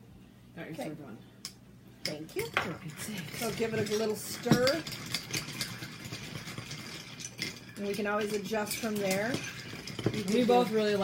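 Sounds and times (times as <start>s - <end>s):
spoons clinking in glasses: 2.0s - 11.0s
ice cubes clinking: 2.4s - 11.0s.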